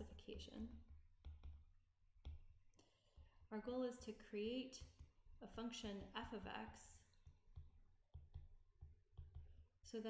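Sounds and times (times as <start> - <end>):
stylus tapping on tablet screen: 0.7 - 3.4, 4.7 - 9.8.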